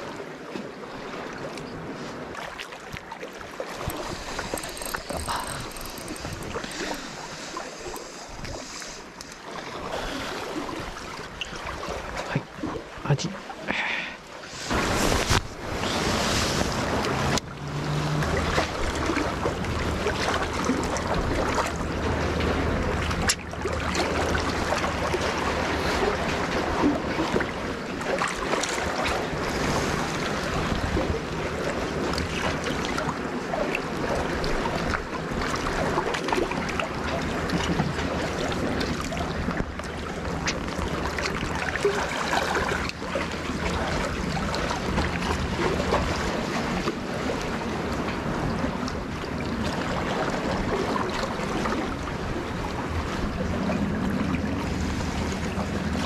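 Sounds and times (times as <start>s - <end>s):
sea waves washing on concrete: 0.0s - 56.0s.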